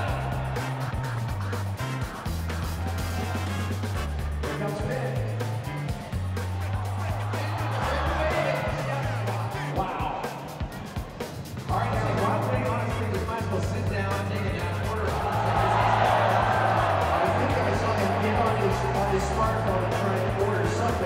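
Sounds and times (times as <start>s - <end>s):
music with held bass notes: 0.0s - 9.8s, 11.6s - 21.0s
voices in music: 0.0s - 21.0s.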